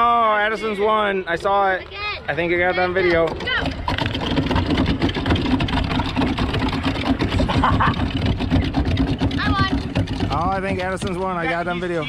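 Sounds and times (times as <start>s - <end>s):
hand water pumps clacking: 2.6s - 12.0s
water gushing and splashing: 3.1s - 12.0s.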